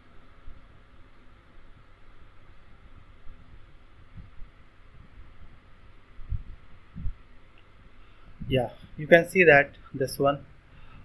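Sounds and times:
background hum and hiss: 0.0s - 11.0s
soft low thuds: 3.3s - 5.5s, 6.2s - 7.3s.

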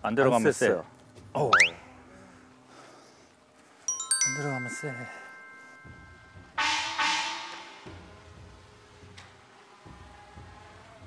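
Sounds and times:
bell-like hit ringing: 3.9s - 7.8s.

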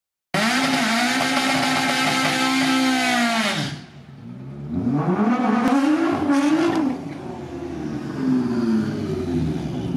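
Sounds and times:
drag car engine revving: 0.4s - 9.9s.

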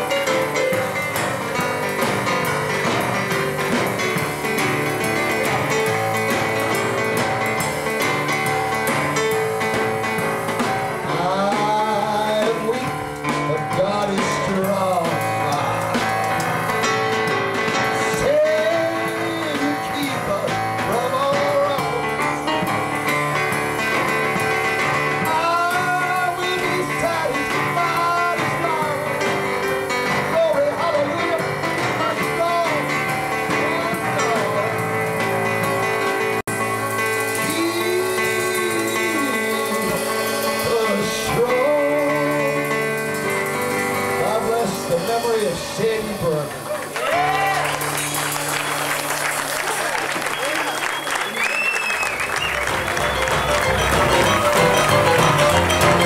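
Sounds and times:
man singing blues: 0.0s - 46.7s
boogie-woogie piano: 0.0s - 56.0s.

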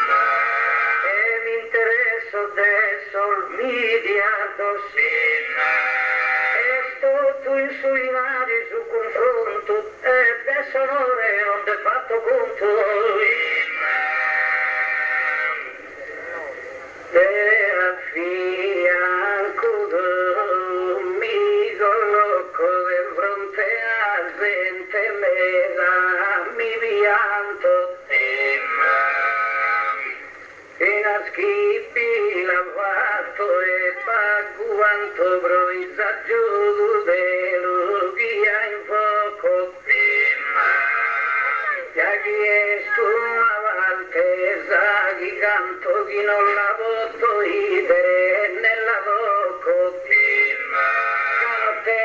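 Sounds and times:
man singing slow chant: 0.0s - 52.0s.

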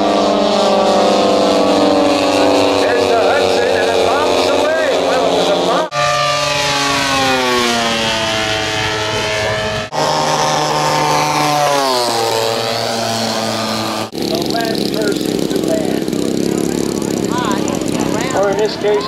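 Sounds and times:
model plane engines flying by: 0.0s - 19.0s
voices: 2.4s - 5.9s, 14.2s - 19.0s.

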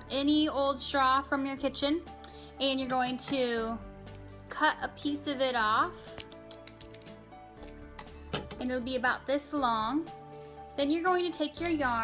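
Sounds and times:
soft background music: 0.0s - 12.0s
scissors snipping plastic straw: 6.0s - 7.8s.

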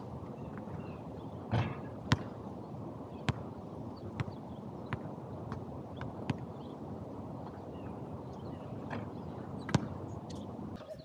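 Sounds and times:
basketball bouncing on asphalt: 1.5s - 2.4s, 3.2s - 6.6s, 8.9s - 10.1s.

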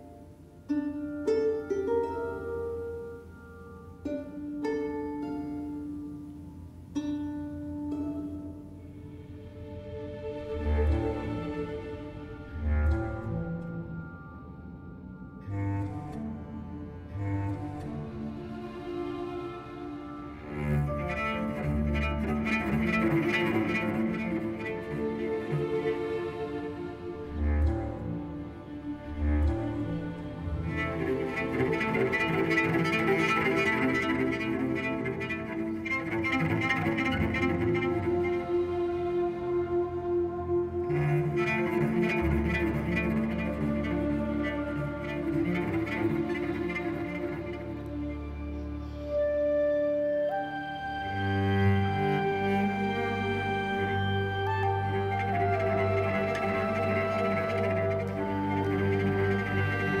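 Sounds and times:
cello sustained notes: 0.0s - 60.0s
string orchestra: 0.0s - 60.0s.

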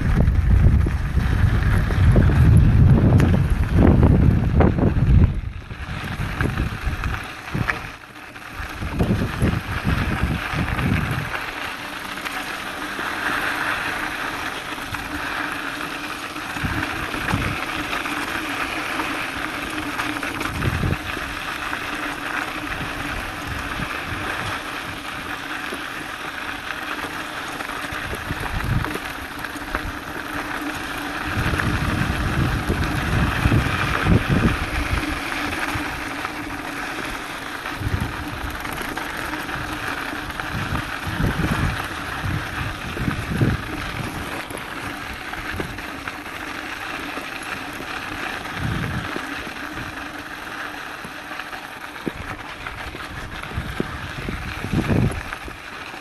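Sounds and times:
wind buffeting microphone: 0.0s - 11.7s, 13.2s - 25.8s, 27.8s - 46.4s, 47.7s - 50.2s, 52.0s - 55.7s
bike frame rattling: 0.0s - 56.0s
bike tyres on dirt and gravel: 0.0s - 56.0s.

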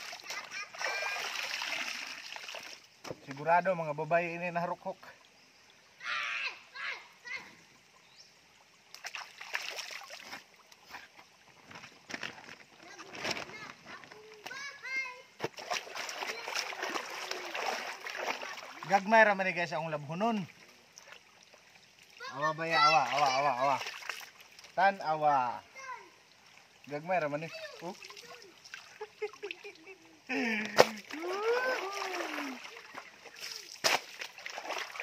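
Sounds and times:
water splashing from wrung garment: 0.0s - 3.2s, 8.9s - 13.8s, 15.4s - 19.1s, 21.0s - 24.8s, 27.6s - 29.8s, 30.4s - 35.0s
running stream: 0.0s - 35.0s.

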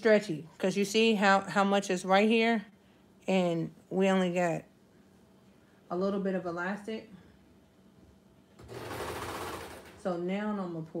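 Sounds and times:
serger machine stitching: 8.6s - 10.0s.

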